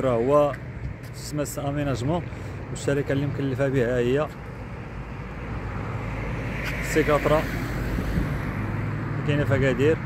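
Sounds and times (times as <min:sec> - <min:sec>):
street traffic hum: 0:00.0 - 0:10.0
man speaking: 0:01.2 - 0:04.4, 0:09.2 - 0:10.0.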